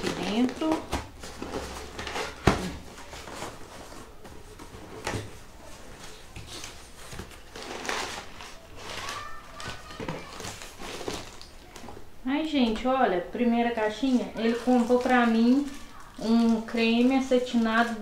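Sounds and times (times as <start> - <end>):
paper packaging rustling: 0.0 - 12.1, 13.8 - 18.0.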